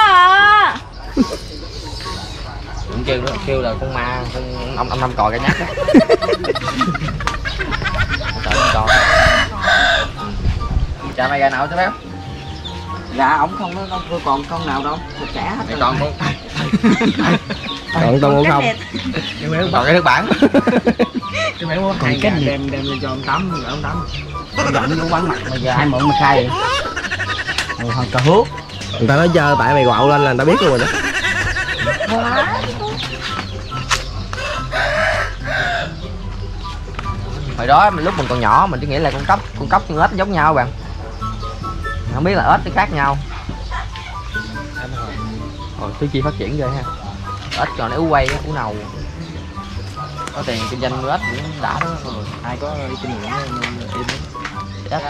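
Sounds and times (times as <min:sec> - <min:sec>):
rooster crowing: 0:08.4 - 0:10.3, 0:34.3 - 0:36.1.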